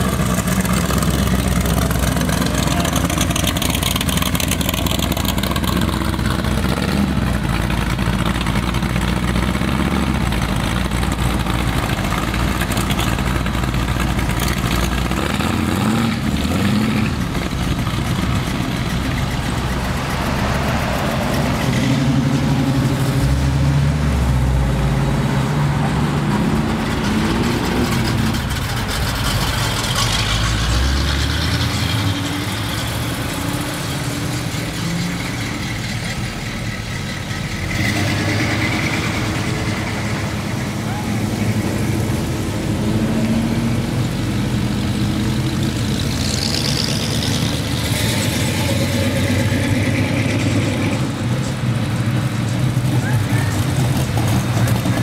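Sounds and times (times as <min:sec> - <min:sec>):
car and truck engines revving: 0:00.0 - 0:55.0.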